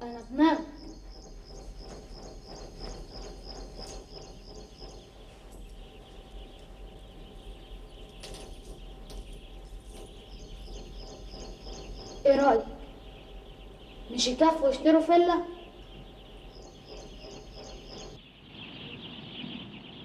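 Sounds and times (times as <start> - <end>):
high-pitched chirping: 0.0 - 19.8
low hum: 0.0 - 20.0.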